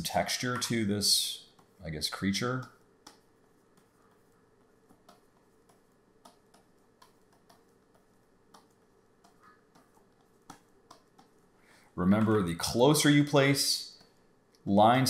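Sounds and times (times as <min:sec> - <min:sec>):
stylus tapping on drawing tablet: 0:03.0 - 0:11.4.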